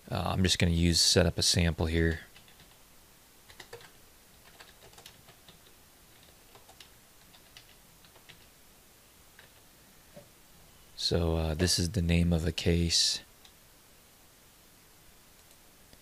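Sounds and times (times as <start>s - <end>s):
faint keyboard typing: 2.0s - 2.8s, 3.4s - 8.6s, 9.3s - 10.3s, 15.3s - 16.0s.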